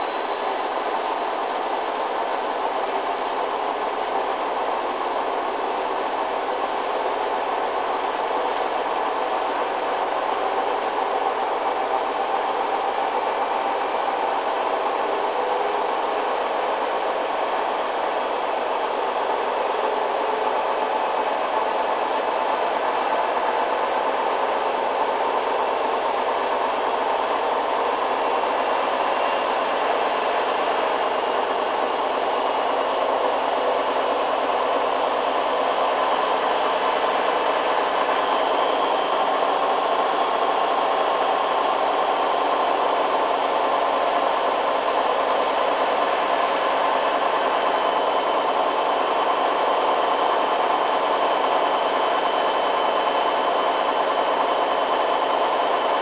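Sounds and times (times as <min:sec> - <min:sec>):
washing machine motor whine: 0:00.0 - 0:56.0.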